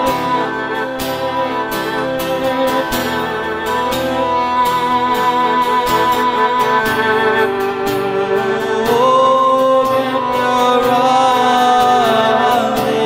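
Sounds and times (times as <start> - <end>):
guitar playing devotional melody: 0.0 - 13.0.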